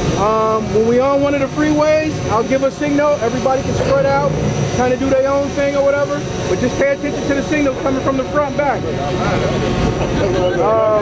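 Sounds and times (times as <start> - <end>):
crowd talking and laughing: 1.5 - 11.0
voice rising: 3.2 - 11.0.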